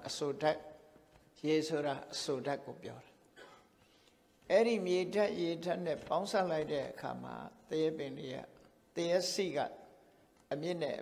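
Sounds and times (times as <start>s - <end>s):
man giving sermon: 0.0s - 3.4s, 4.4s - 11.0s.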